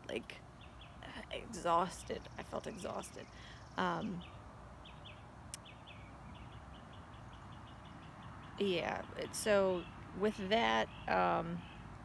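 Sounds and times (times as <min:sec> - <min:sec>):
faint background noise: 0:00.0 - 0:12.0.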